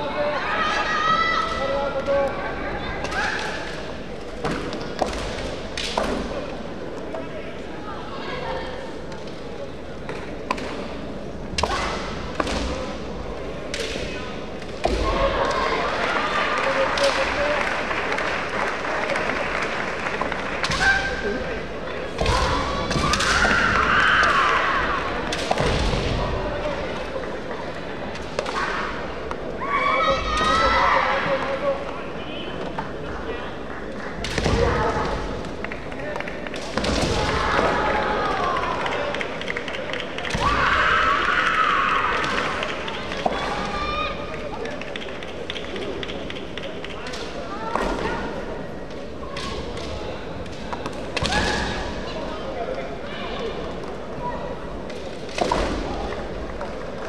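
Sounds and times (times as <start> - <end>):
high shout: 0.0 - 3.6, 40.3 - 42.4
people shouting: 22.2 - 25.2, 43.3 - 44.3.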